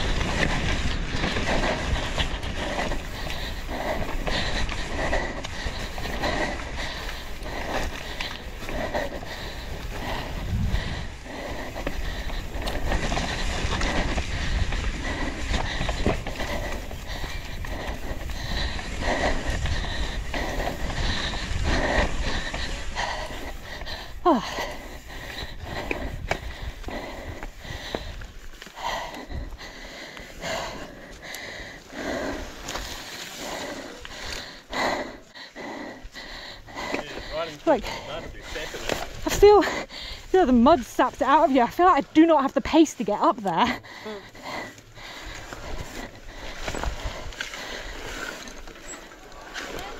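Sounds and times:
bike tyres on dirt: 0:00.0 - 0:49.9
rider breathing hard: 0:00.0 - 0:49.9
wind on microphone: 0:10.0 - 0:23.3.

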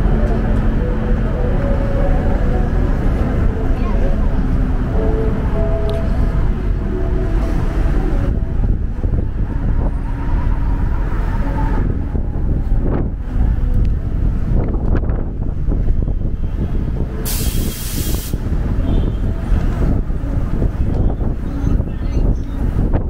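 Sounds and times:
traffic rumble: 0:00.0 - 0:23.0
sharp air hiss: 0:17.2 - 0:18.4.

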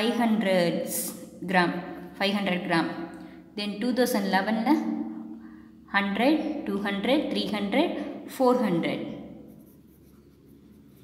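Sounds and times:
pen scratching on paper: 0:09.3 - 0:11.0.

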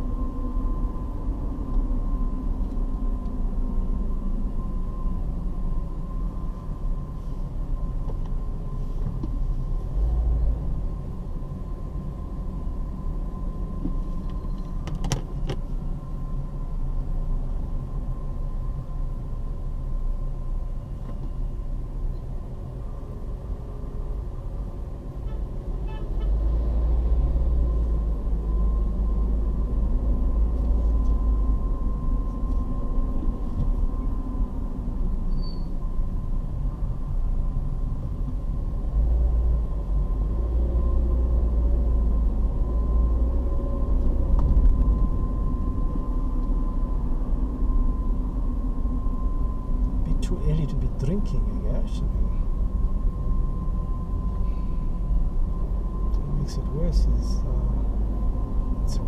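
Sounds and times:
car engine and road rumble: 0:00.0 - 0:59.0.

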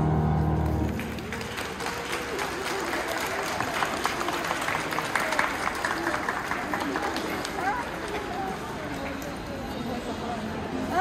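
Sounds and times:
crowd applauding: 0:00.4 - 0:09.8.

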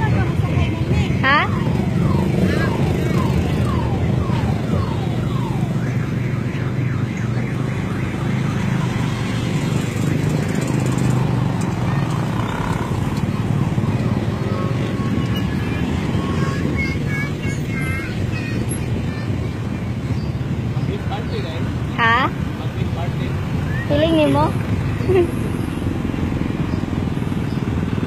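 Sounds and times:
cars driving past: 0:00.0 - 0:28.0.

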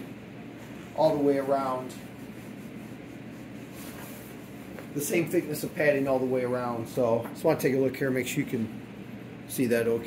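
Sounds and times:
hand rubbing padded fabric: 0:00.0 - 0:07.1.

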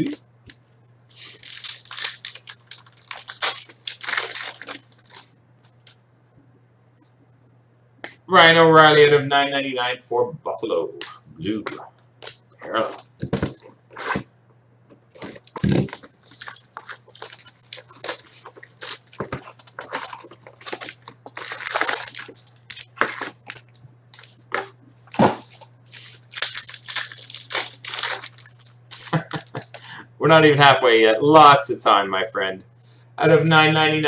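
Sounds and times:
low steady hum: 0:00.0 - 0:34.0
foil packs crinkling and tearing: 0:01.1 - 0:06.0, 0:15.1 - 0:29.8.

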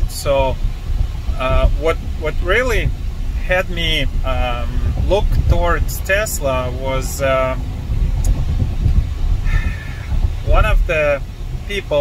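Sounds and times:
road and tyre rumble: 0:00.0 - 0:12.0.

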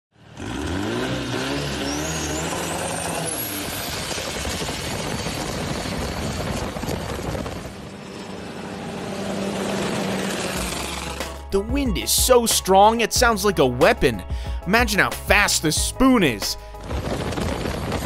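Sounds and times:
boat engine revving: 0:00.2 - 0:11.5.

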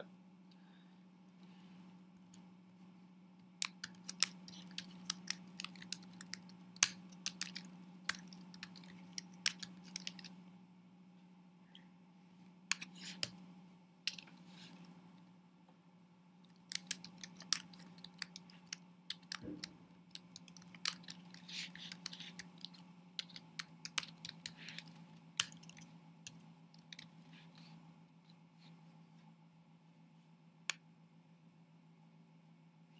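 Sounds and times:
faint low hum: 0:00.0 - 0:32.9.

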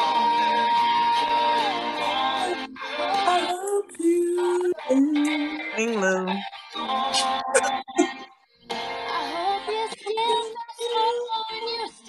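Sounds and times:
high voice singing with accompaniment: 0:00.0 - 0:08.3, 0:09.0 - 0:12.0.

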